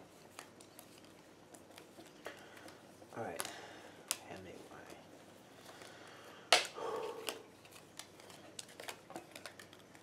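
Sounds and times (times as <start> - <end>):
playing cards slapping on wood floor: 5.7 - 10.0.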